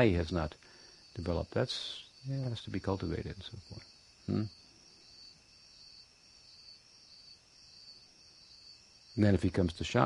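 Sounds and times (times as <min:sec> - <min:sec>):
crickets chirring: 0:00.0 - 0:10.0
man saying hmm: 0:04.3 - 0:04.5.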